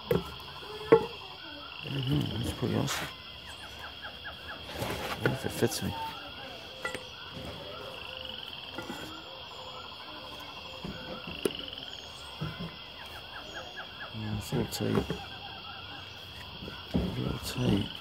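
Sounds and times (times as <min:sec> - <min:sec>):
small birds chirping: 0:00.0 - 0:18.0.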